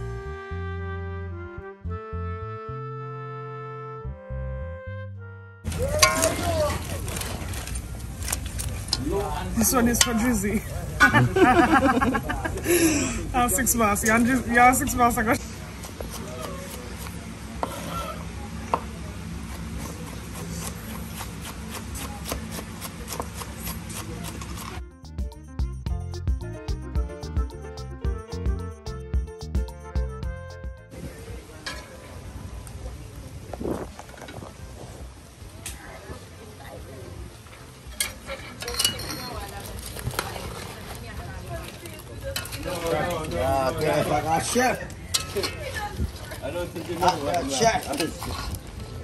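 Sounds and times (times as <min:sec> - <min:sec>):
background music: 0:00.0 - 0:06.4, 0:24.8 - 0:31.0
metal utensil clanking in steel pot: 0:05.7 - 0:07.2, 0:09.6 - 0:10.6, 0:37.9 - 0:39.5, 0:42.4 - 0:45.8.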